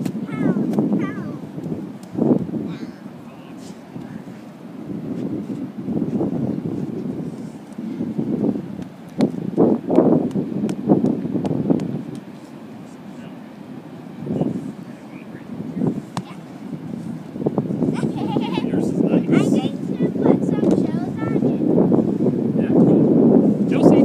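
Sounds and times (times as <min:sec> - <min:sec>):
wind on microphone: 0:00.0 - 0:24.0
children chattering: 0:17.9 - 0:21.5.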